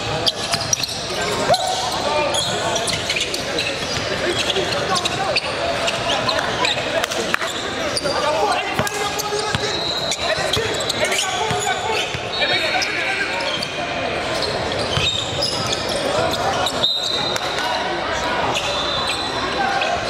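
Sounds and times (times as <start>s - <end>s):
echoing crowd voices: 0.0s - 20.0s.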